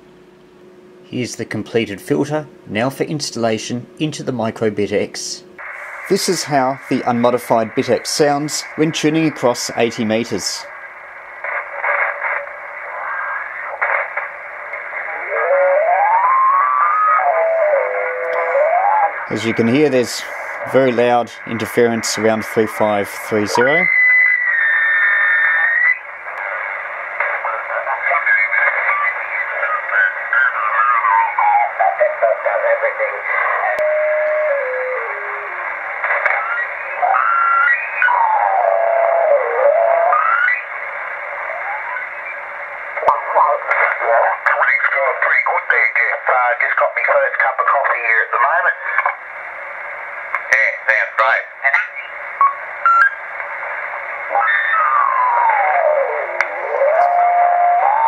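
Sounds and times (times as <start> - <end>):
garbled radio voices: 1.2 - 10.8, 11.4 - 24.0, 25.3 - 49.2, 50.0 - 58.0.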